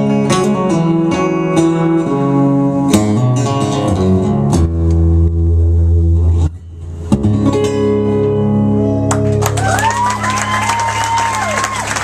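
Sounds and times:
acoustic guitar chords: 0:00.0 - 0:09.5.

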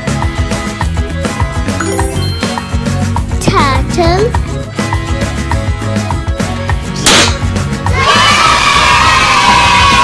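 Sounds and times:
background music: 0:00.0 - 0:10.0
confetti cannon pop: 0:07.1 - 0:07.4
children cheering: 0:08.0 - 0:10.0.

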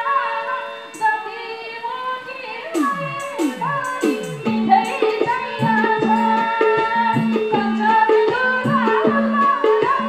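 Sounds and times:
harmonium-like sustained tones: 0:00.0 - 0:10.0.

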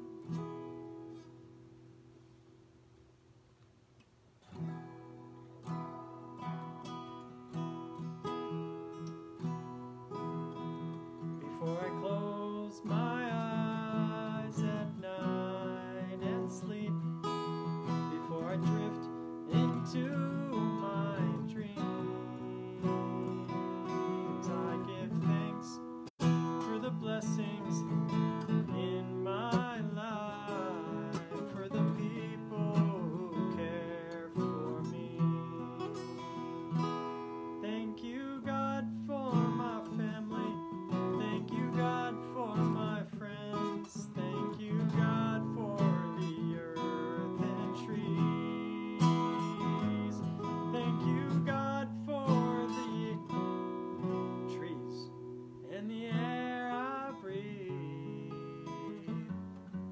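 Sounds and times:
acoustic guitar strumming: 0:00.0 - 0:02.3, 0:04.4 - 0:59.9
man singing wordless melody: 0:09.0 - 0:59.9.

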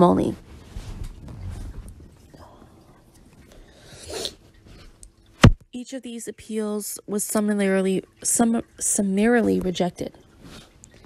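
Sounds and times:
faint room noise: 0:00.0 - 0:11.0.

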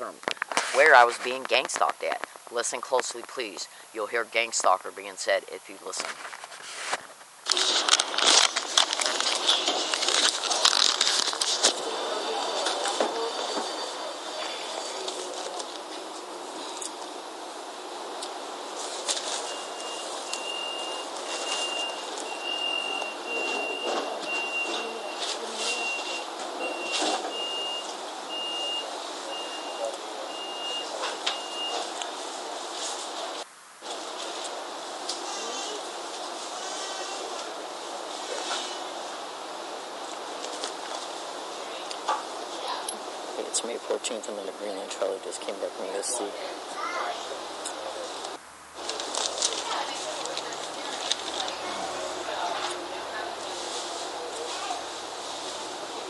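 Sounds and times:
trolley ride noise: 0:08.7 - 0:56.0.

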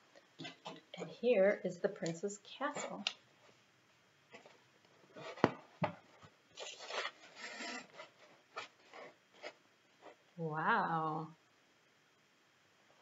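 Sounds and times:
rubbing and scraping: 0:04.3 - 0:10.3.

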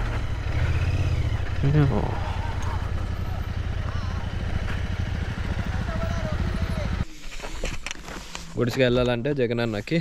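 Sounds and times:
motorcycle engine running: 0:00.0 - 0:07.1.

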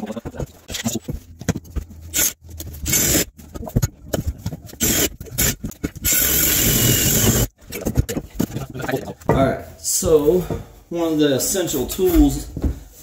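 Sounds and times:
drill hole saw cutting wood: 0:02.1 - 0:03.3, 0:04.8 - 0:07.5.

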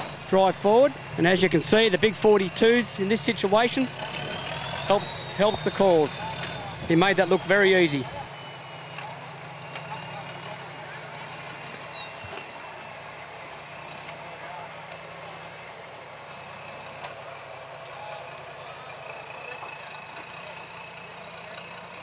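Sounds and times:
off-road vehicle engine at low revs: 0:00.0 - 0:22.0.

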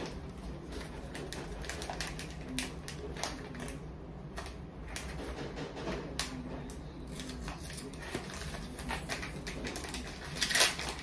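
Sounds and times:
paper wrapper crinkling: 0:00.0 - 0:05.2, 0:07.0 - 0:11.0
low steady hum: 0:00.0 - 0:11.0.

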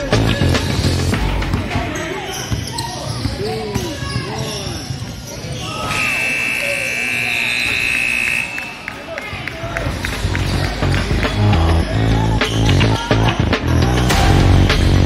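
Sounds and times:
voices in gym: 0:00.0 - 0:14.9
basketball bouncing: 0:01.2 - 0:04.2
sneakers squeaking on hardwood: 0:01.4 - 0:06.2.

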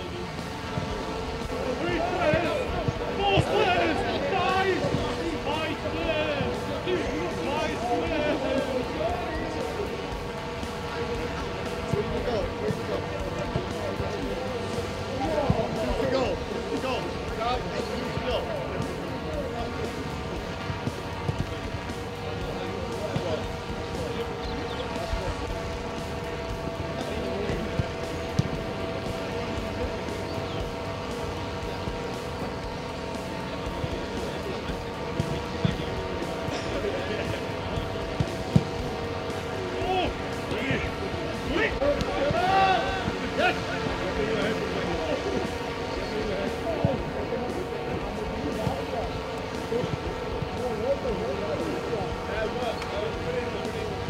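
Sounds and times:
voices talking: 0:00.0 - 0:54.0
footballs being kicked: 0:20.5 - 0:43.6.

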